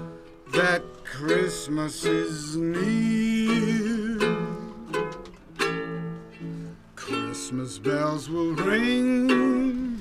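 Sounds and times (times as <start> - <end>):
ukulele strumming chords: 0.0 - 10.0.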